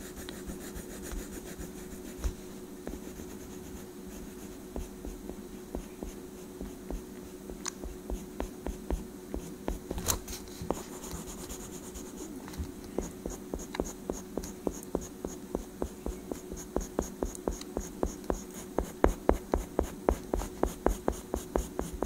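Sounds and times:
oil pastel rubbing on paper: 0:00.0 - 0:12.4, 0:13.0 - 0:22.0.

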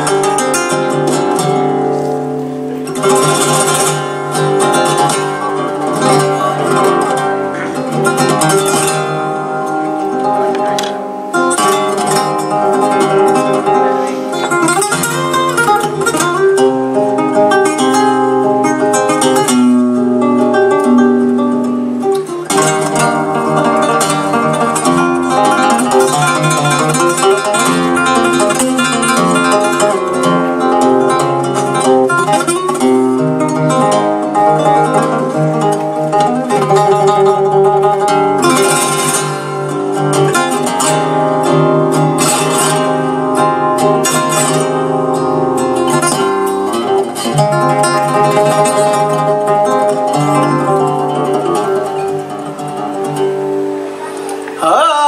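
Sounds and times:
flamenco guitar picked melody: 0:00.0 - 0:55.0
strummed guitar chords: 0:00.0 - 0:55.0.

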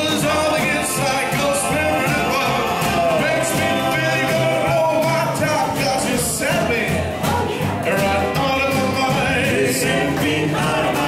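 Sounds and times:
vocal group singing close harmony: 0:00.0 - 0:05.4, 0:06.0 - 0:11.0
drums: 0:00.0 - 0:11.0
upright bass: 0:00.0 - 0:11.0.

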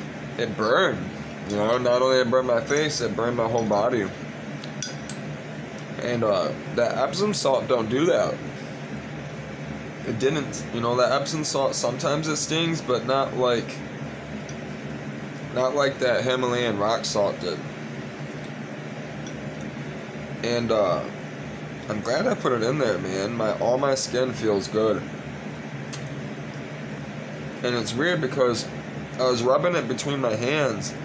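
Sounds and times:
fan running: 0:00.0 - 0:31.0
steady low hum: 0:00.0 - 0:31.0.

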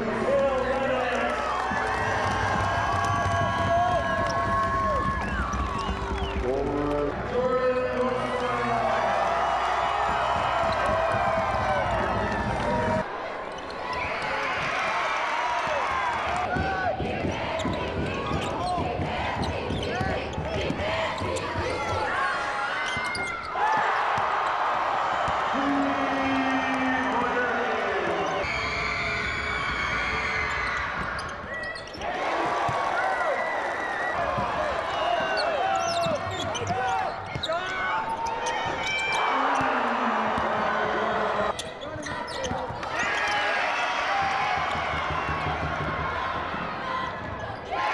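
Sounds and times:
arena crowd noise: 0:00.0 - 0:47.9
basketball bouncing: 0:15.6 - 0:24.3
sneakers squeaking on court: 0:17.3 - 0:23.9, 0:30.4 - 0:32.2, 0:35.2 - 0:39.8, 0:41.1 - 0:43.4.

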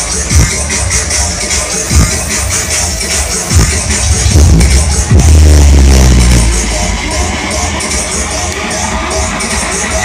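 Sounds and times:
loud electronic dance music: 0:00.0 - 0:10.0
deep bass note swooping down: 0:03.9 - 0:07.1.

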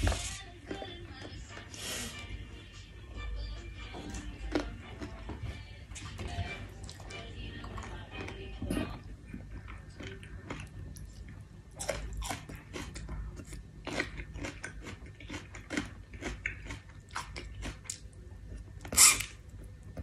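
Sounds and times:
person chewing and biting: 0:04.0 - 0:05.4, 0:06.8 - 0:20.0.

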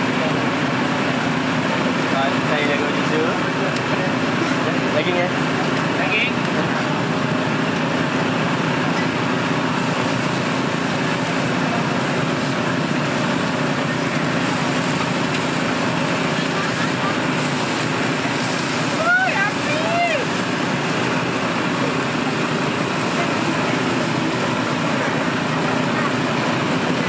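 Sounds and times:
many voices: 0:00.0 - 0:27.0
meat sizzling over coals: 0:00.0 - 0:27.0
traffic: 0:00.0 - 0:27.0.

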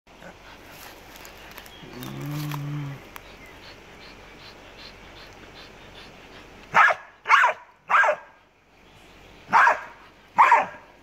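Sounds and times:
steady outdoor hiss: 0:00.1 - 0:11.0.

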